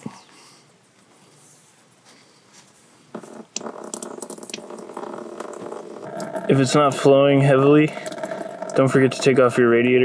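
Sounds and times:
coolant stream splashing into tub: 3.2s - 9.6s.

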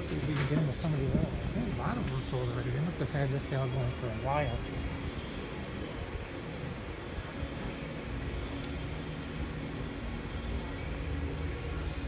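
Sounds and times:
low rumble of hall room noise: 0.0s - 12.0s.

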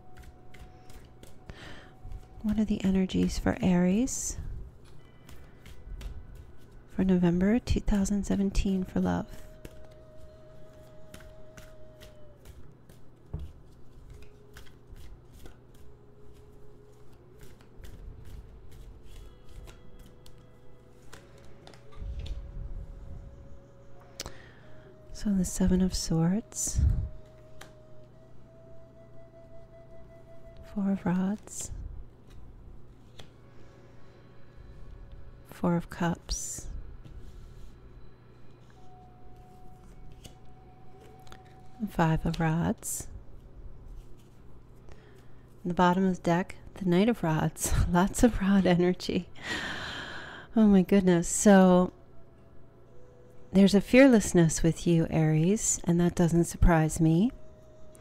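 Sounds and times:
cards being shuffled: 0.0s - 3.4s, 4.7s - 7.0s, 8.7s - 22.6s, 27.1s - 28.3s, 31.4s - 33.4s, 38.6s - 42.5s, 43.9s - 45.6s.

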